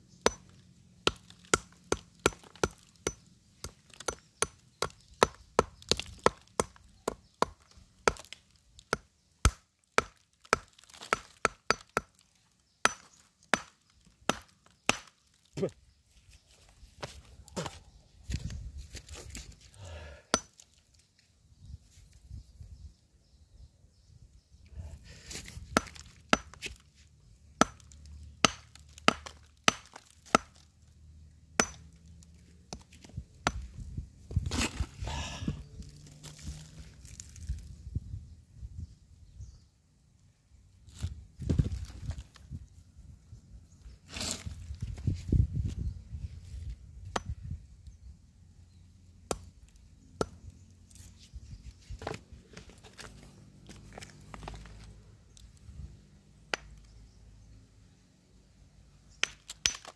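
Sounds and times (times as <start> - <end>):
hammer striking stone: 0.2 - 0.5, 1.1 - 8.3, 8.9 - 12.1, 12.8 - 13.7, 20.3 - 20.5, 25.8 - 26.6, 27.6 - 30.6, 31.6 - 31.9, 33.4 - 33.6, 59.2 - 59.9.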